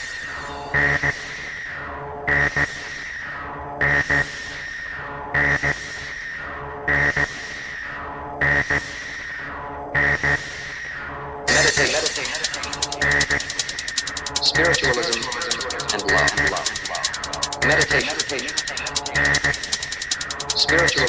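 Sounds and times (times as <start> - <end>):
trance music: 11.5 - 21.0.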